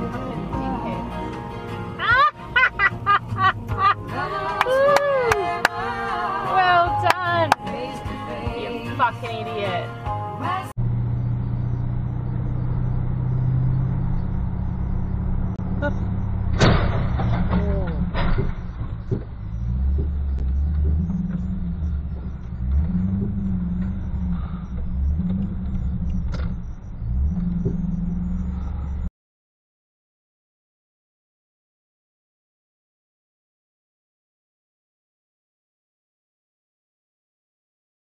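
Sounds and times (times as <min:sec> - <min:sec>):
car engine and road rumble: 0:00.0 - 0:29.1
sharp knocks: 0:16.5 - 0:21.4.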